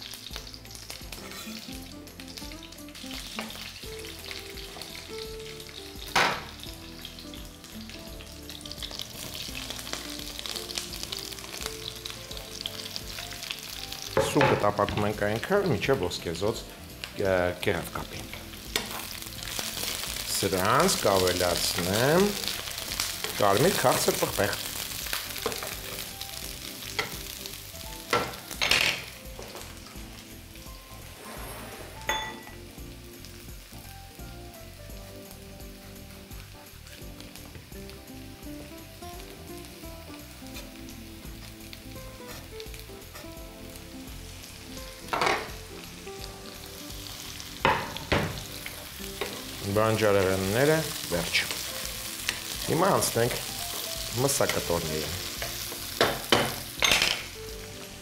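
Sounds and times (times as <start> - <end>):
food sizzling in a pan: 0.0 - 58.0
kitchen utensils knocking: 28.1 - 29.1, 32.1 - 32.6, 45.1 - 45.5, 56.0 - 57.3.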